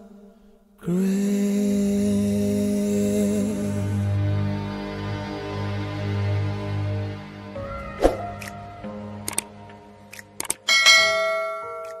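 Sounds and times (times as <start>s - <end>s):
held music chord: 2.1s - 12.0s
short clicks: 9.2s - 9.5s, 10.1s - 10.7s
bright bell chime: 10.7s - 12.0s
sharp ding: 10.7s - 12.0s.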